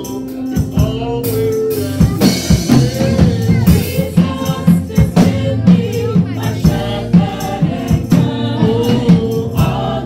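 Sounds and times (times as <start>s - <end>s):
church band playing gospel music: 0.0s - 10.0s
drum kit steady beat: 0.0s - 10.0s.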